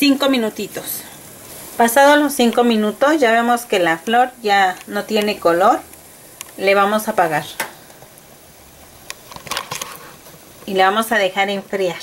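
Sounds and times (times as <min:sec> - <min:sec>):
kitchen background noise: 0:00.0 - 0:12.0.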